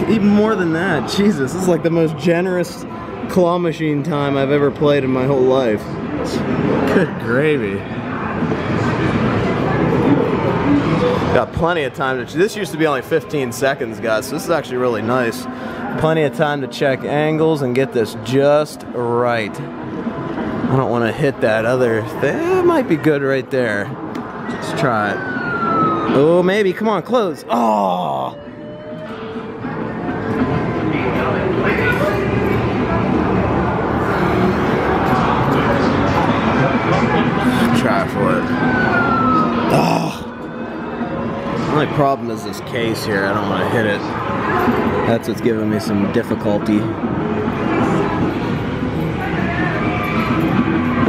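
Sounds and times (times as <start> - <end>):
people talking: 0.0 - 7.8, 10.9 - 19.6, 20.7 - 23.9, 30.9 - 38.5, 41.7 - 46.9.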